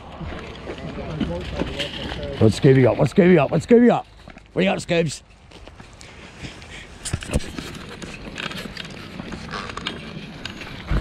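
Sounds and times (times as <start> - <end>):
footsteps on gravel: 0.0 - 11.0.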